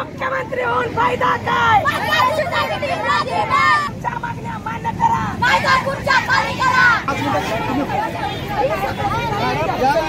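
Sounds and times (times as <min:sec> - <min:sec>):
highway traffic noise: 0:00.0 - 0:10.0.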